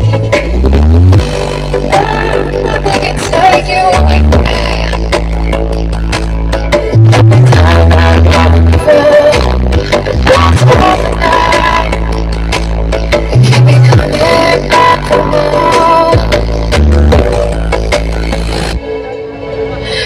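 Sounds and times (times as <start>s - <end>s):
loud dance music with heavy bass: 0.0s - 18.8s.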